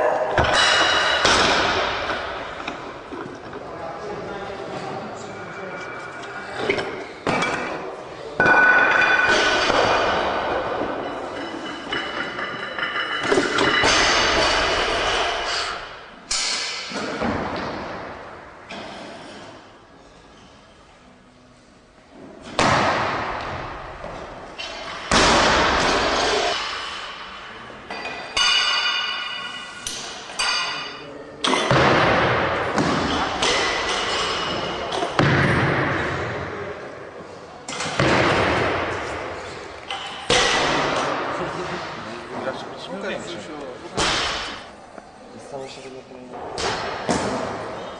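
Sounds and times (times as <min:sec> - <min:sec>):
barbell dropping and clanging: 0:00.4 - 0:02.8, 0:08.4 - 0:15.4, 0:24.1 - 0:32.0, 0:32.8 - 0:35.6, 0:39.9 - 0:41.1.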